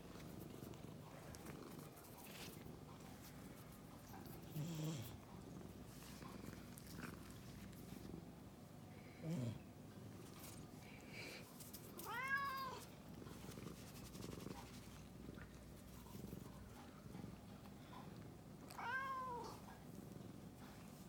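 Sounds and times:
cat purring: 0.0 - 11.9, 12.6 - 21.0
cat meowing: 12.0 - 12.9, 18.8 - 19.6.

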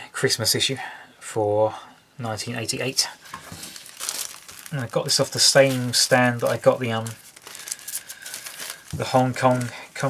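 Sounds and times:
plastic bag crinkling: 2.9 - 10.0.

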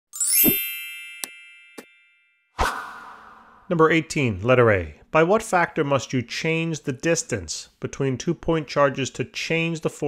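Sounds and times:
rising shimmer into chime: 0.2 - 1.8.

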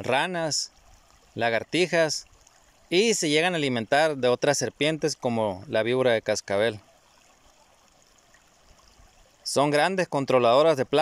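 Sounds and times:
stream trickling over rocks: 0.0 - 11.0.

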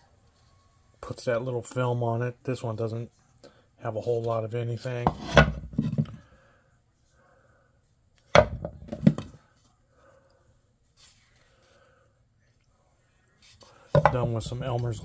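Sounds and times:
wooden bowls knocking together: 14.0 - 14.5.

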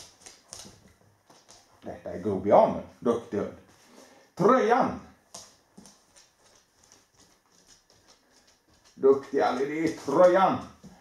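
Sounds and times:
dog claws ticking on wood floor: 0.0 - 1.8, 5.2 - 11.0.

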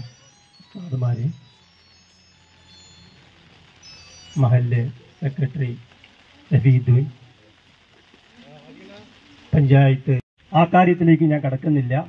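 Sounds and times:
public address system hum: 0.0 - 7.7, 8.4 - 12.0
faint high tones: 0.0 - 9.5.

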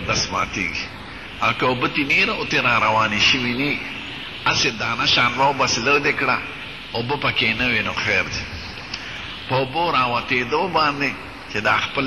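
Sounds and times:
man talking: 0.0 - 8.7, 9.4 - 12.0.

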